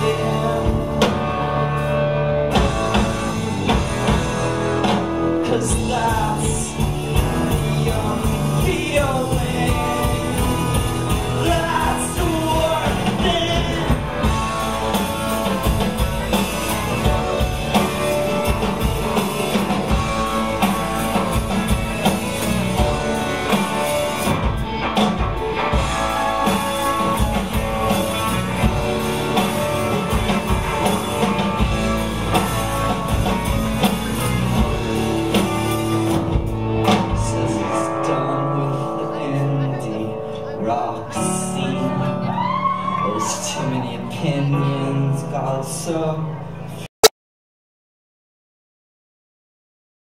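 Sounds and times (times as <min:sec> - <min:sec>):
steady drum beat: 0:00.0 - 0:37.6
strummed guitars: 0:00.0 - 0:46.8
live rock band playing: 0:00.0 - 0:46.9.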